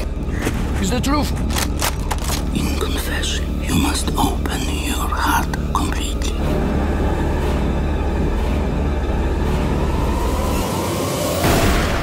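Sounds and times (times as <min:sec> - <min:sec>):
low rumbling drone: 0:02.0 - 0:12.0.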